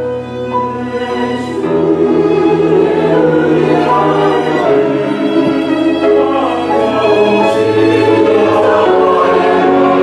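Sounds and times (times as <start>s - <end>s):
bowed strings: 0.0s - 10.0s
choir singing a hymn: 0.0s - 10.0s.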